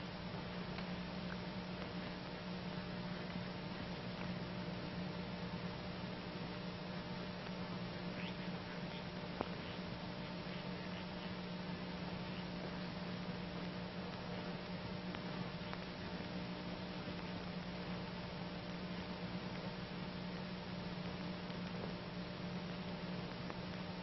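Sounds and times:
recording hiss and hum: 0.0 - 24.0.

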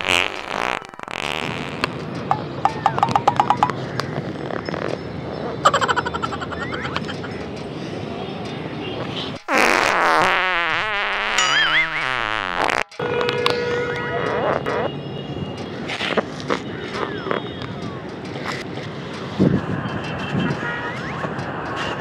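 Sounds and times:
cartoon clicks: 0.4 - 4.1
wobbling downward sliding tone: 2.3 - 3.9, 5.6 - 7.2, 11.4 - 12.2.

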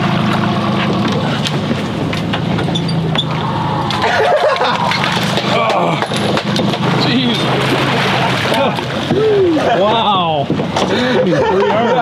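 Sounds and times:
water noise: 0.0 - 11.9
outboard engine humming: 0.0 - 12.0
wind: 0.0 - 12.0.

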